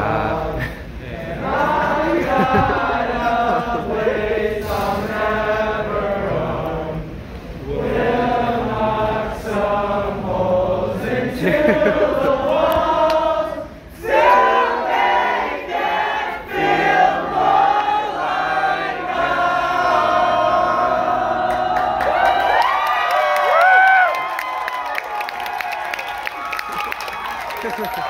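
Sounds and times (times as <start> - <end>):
choir singing held notes: 0.0 - 22.1
rising whoops: 21.8 - 28.0.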